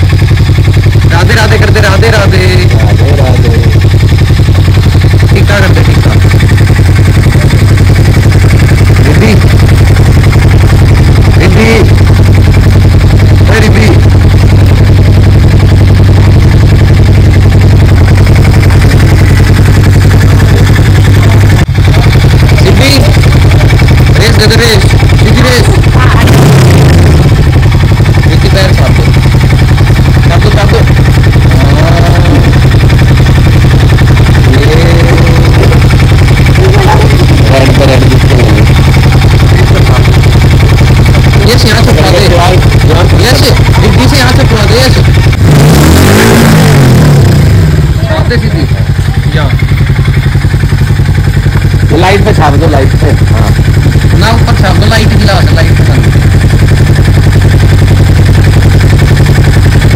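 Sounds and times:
motorcycle engine revving: 0.0 - 59.9
people talking: 1.1 - 3.8, 5.4 - 6.2, 9.0 - 9.4, 11.4 - 11.9, 13.4 - 14.0, 22.0 - 23.2, 24.2 - 26.4, 28.3 - 29.2, 30.3 - 30.9, 31.5 - 32.5, 34.4 - 35.9, 36.5 - 38.8, 39.5 - 40.2, 41.4 - 45.1, 48.0 - 49.6, 51.9 - 53.6, 54.2 - 56.1.

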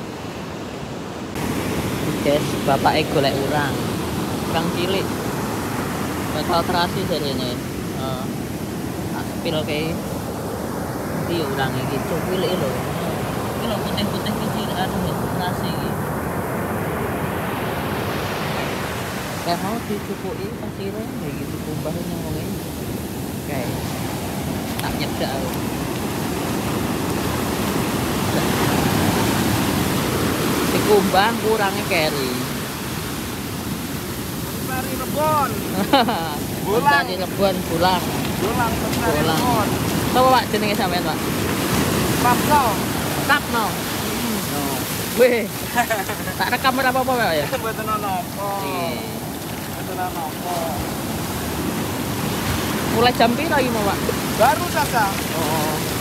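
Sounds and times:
waves breaking on sandy beach: 0.0 - 56.0.

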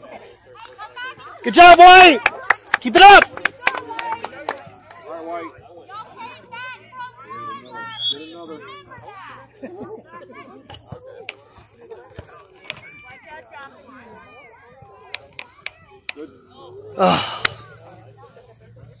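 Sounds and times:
chatter: 0.0 - 19.0
people shouting and calling: 1.0 - 3.3.

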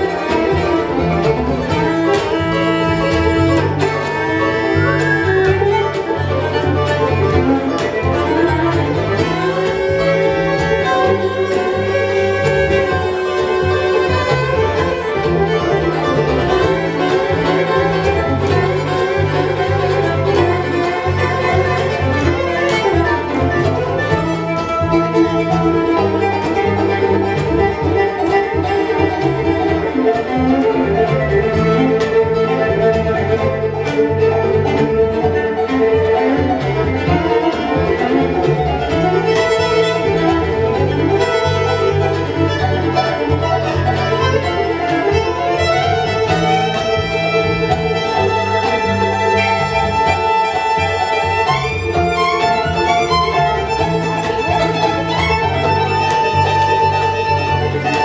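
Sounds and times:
acoustic guitar: 0.0 - 58.0
banjo: 0.0 - 58.0
fiddle: 0.0 - 58.0
upright bass: 0.0 - 58.0.

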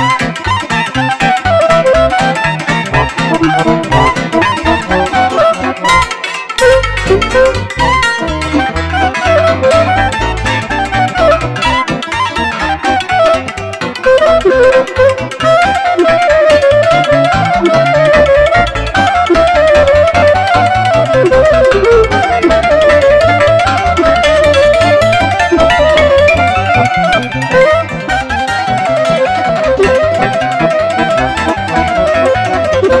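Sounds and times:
accordion: 0.0 - 33.0
cimbalom: 0.0 - 33.0
clarinet melody: 0.0 - 33.0
keyboard accompaniment: 0.0 - 33.0
pulsing bass: 0.0 - 33.0.

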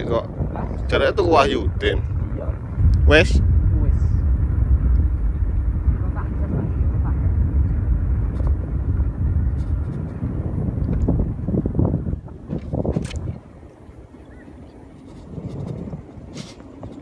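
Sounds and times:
vehicle and road noise: 0.0 - 17.0
wind buffeting microphone: 0.0 - 17.0.

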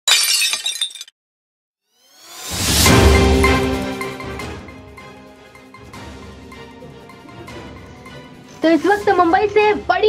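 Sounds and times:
glass shattering: 0.0 - 1.2.

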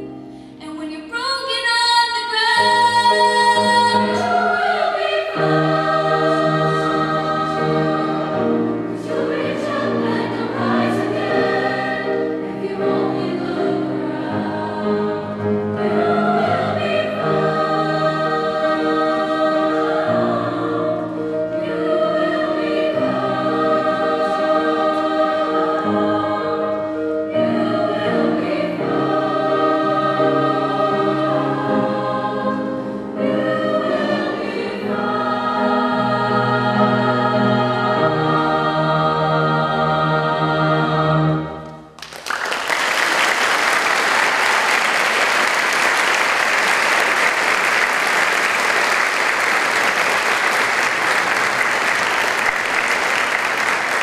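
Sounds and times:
grand piano: 0.0 - 54.0
mixed choir singing: 2.3 - 41.8.

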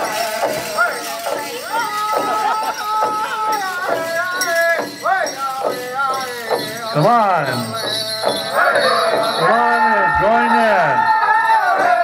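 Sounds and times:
voices singing long notes: 0.0 - 12.0.

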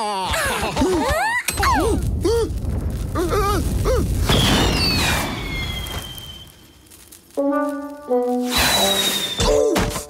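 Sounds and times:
firework rocket whistling: 4.2 - 6.8, 8.4 - 9.6.

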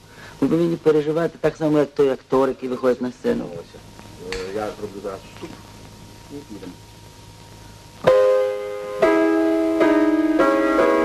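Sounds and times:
piano chords: 8.0 - 11.0.

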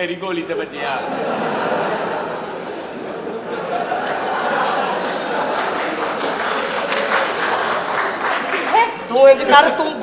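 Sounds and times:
audience clapping: 3.9 - 9.5.

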